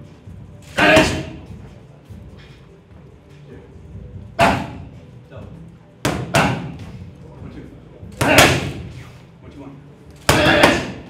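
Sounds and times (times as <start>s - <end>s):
boxing gloves hitting focus mitts: 6.0s - 7.0s, 8.1s - 9.0s, 10.2s - 11.0s.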